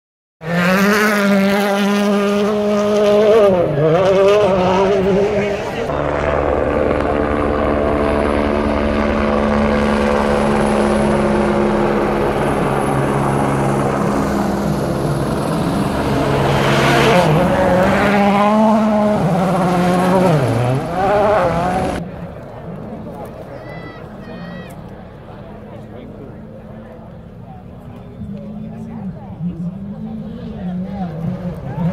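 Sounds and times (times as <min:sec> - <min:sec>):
rally car engine revving: 0:00.4 - 0:06.8, 0:09.3 - 0:22.0, 0:26.2 - 0:31.9
helicopter drone with turbine whine: 0:05.5 - 0:22.2.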